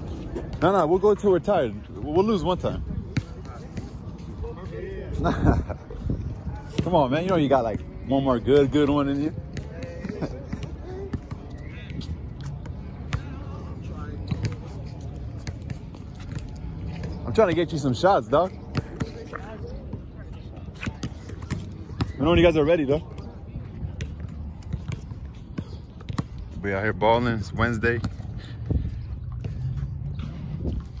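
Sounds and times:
players' voices: 0.0 - 31.0.

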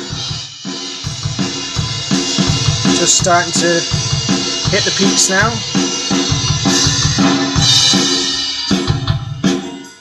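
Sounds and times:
drum kit playing steady beat: 0.0 - 10.0.

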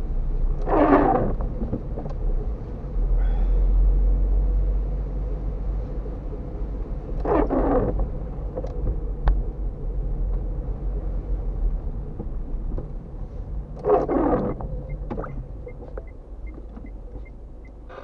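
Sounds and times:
car driving on wet street: 0.0 - 18.0
windshield wiper swishing: 0.6 - 2.1, 7.2 - 9.1, 12.0 - 17.4.

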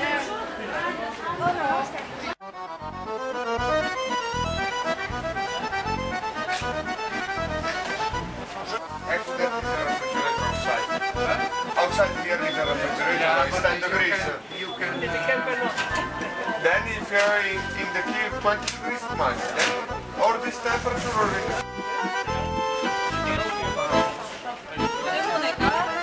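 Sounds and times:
people chatting: 0.0 - 2.4, 7.8 - 22.1, 23.1 - 26.0
accordion music with steady beat: 2.4 - 26.0.

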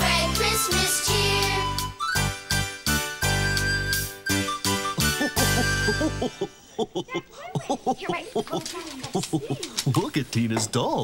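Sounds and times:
children and woman talking: 7.1 - 10.1.

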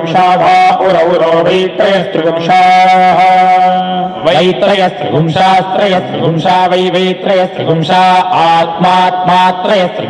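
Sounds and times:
man chanting: 0.0 - 10.0.

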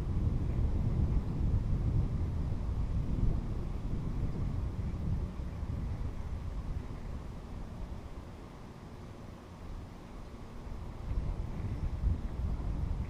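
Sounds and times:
wind buffeting microphone: 0.0 - 8.8, 9.5 - 13.0.

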